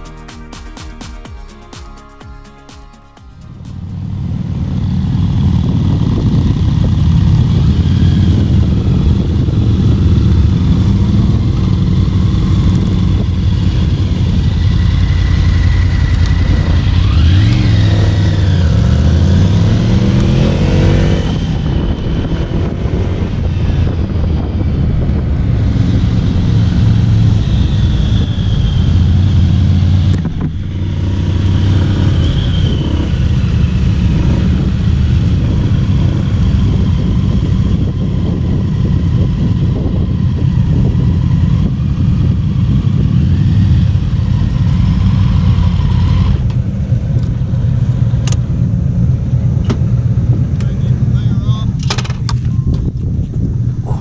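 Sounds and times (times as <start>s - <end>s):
motorcycle engines: 2.4s - 54.0s
wind rush: 3.4s - 50.5s, 52.4s - 54.0s.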